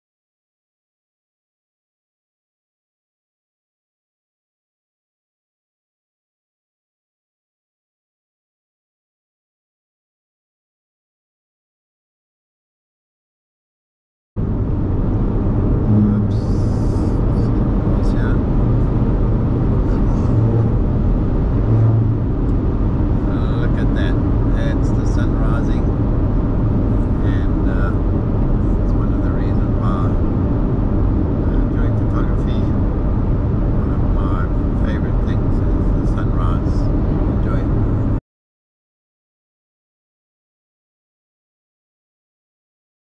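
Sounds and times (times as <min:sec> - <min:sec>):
car road and engine noise: 0:14.4 - 0:38.2.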